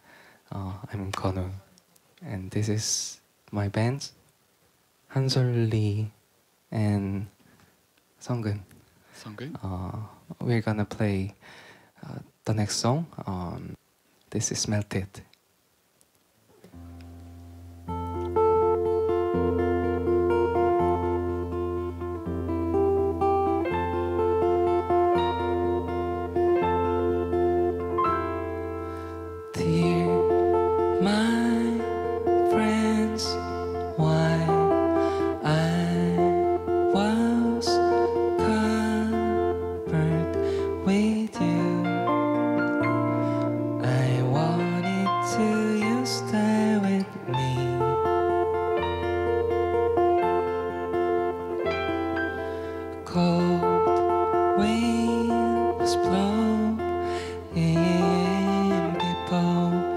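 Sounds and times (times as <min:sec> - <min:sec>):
man singing softly: 0:00.0 - 0:04.1, 0:05.1 - 0:07.3, 0:09.2 - 0:11.4, 0:29.5 - 0:42.4, 0:43.8 - 0:48.5, 0:53.0 - 0:59.9
fingerpicked acoustic guitar: 0:16.6 - 0:59.9
low melody line: 0:16.7 - 0:59.9
sustained keyboard chords: 0:16.8 - 0:59.9.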